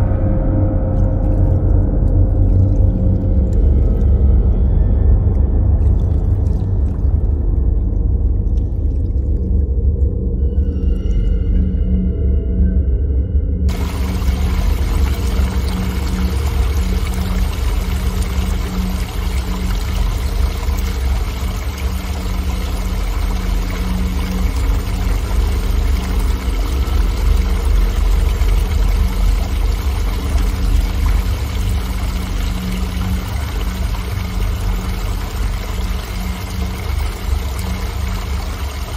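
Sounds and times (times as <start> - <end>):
waterfall rushing and splashing: 13.7 - 38.9.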